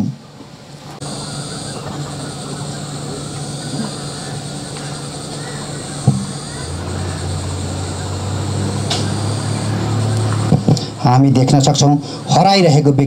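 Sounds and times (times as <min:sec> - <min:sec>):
lower engine hum: 0:01.0 - 0:13.0
outboard motor drone: 0:01.0 - 0:13.0.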